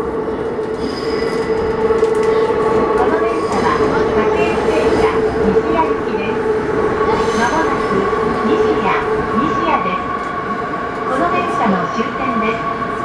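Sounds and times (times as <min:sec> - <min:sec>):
train wheels on rails: 0:00.6 - 0:10.4.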